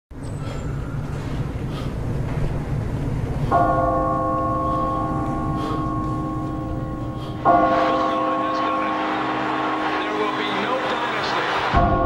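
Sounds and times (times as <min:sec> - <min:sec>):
clock tower bell ringing: 0:03.5 - 0:12.0.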